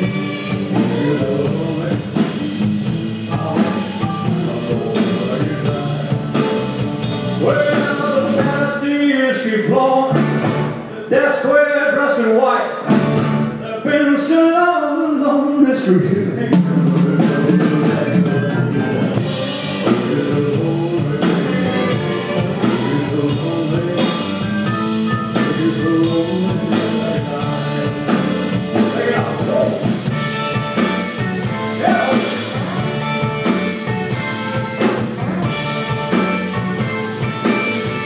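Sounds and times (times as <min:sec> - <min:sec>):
drum kit steady beat: 0:00.0 - 0:10.9, 0:12.8 - 0:14.3, 0:15.2 - 0:38.0
rock and roll band playing: 0:00.0 - 0:38.0.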